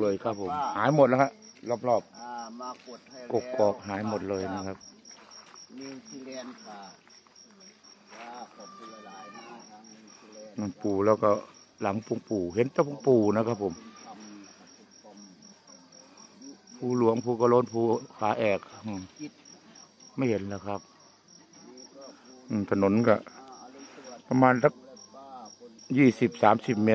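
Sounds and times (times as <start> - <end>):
cricket chirping: 0.0 - 26.9
faint voices: 0.0 - 26.9.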